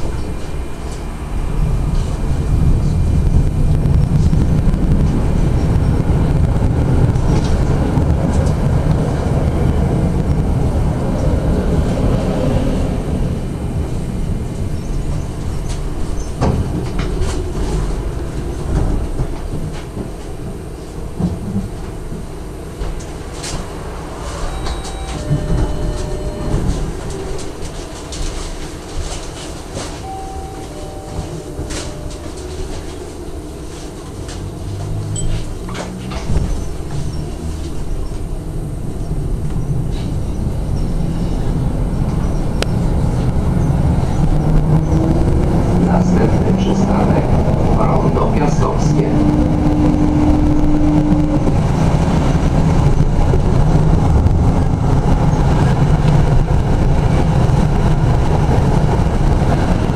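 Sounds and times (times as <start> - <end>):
tram rumbling on rails: 0.0 - 59.9
short beeps: 24.4 - 27.0, 30.0 - 32.9.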